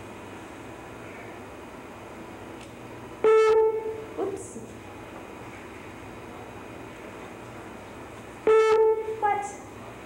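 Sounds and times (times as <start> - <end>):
loud horn-like beep: 3.2 - 4.0, 8.5 - 9.3.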